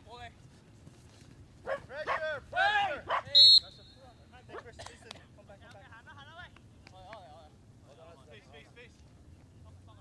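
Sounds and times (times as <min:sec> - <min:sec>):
referee's whistle blast: 0:03.3 - 0:04.0.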